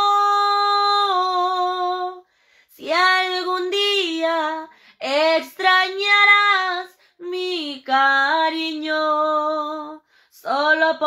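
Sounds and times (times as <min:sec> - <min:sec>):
woman singing unaccompanied: 0:00.0 - 0:11.0
woman breathing: 0:02.2 - 0:02.8, 0:04.7 - 0:05.0, 0:10.0 - 0:10.4.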